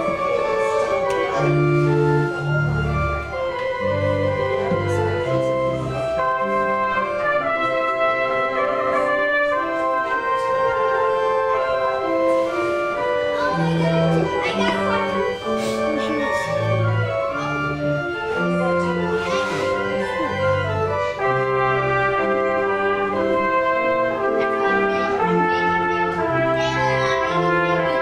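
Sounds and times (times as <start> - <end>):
church organ playing chords: 0.0 - 28.0.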